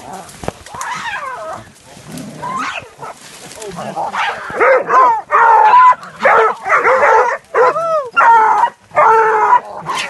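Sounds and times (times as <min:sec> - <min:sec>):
dogs barking and yelping: 0:04.1 - 0:10.0.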